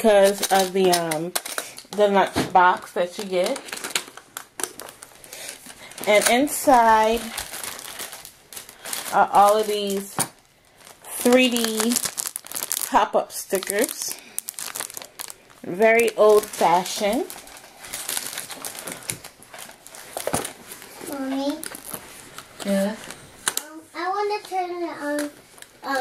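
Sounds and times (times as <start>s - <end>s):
plastic packaging crinkling: 0.0s - 23.7s, 24.4s - 26.0s.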